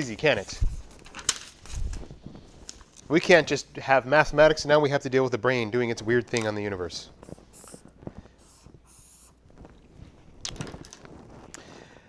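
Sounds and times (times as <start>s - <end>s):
pen scratching on paper: 8.4s - 9.4s.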